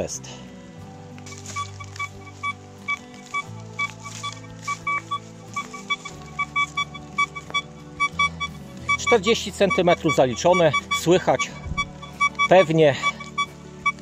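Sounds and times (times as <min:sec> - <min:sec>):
background music: 0:00.0 - 0:14.0
metal detector beeping: 0:01.3 - 0:14.0.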